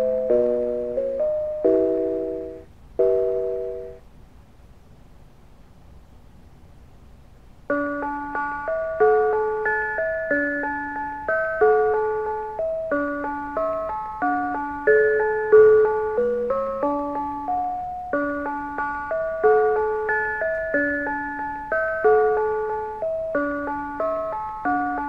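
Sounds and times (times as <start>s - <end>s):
electric bells playing a tune: 0.0s - 4.0s, 7.7s - 25.0s.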